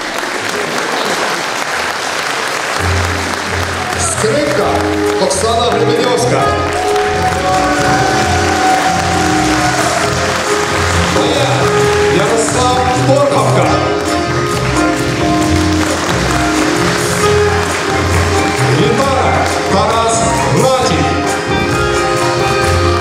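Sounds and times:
accordion: 2.8 - 23.0
double bass: 2.9 - 23.0.

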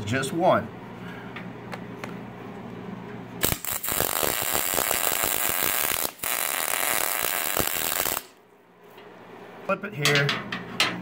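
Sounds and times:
welding arc crackle: 3.4 - 8.4.

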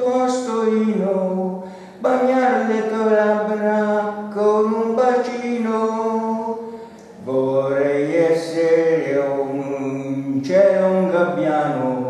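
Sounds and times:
elderly man chanting: 0.0 - 12.0.

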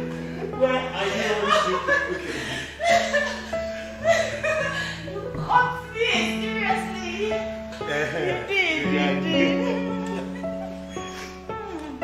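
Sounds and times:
person chuckling and giggling: 0.4 - 5.2.

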